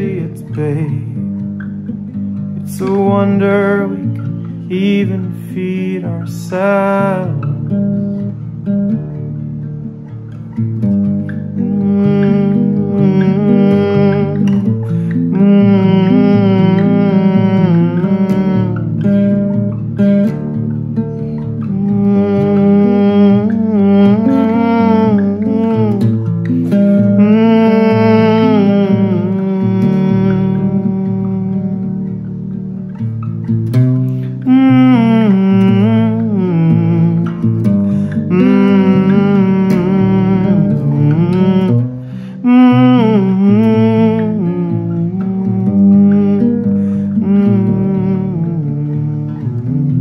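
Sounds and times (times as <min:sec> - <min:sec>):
acoustic guitar plucking: 0:00.0 - 0:50.0
man humming: 0:11.6 - 0:19.4, 0:21.6 - 0:32.2, 0:34.4 - 0:50.0.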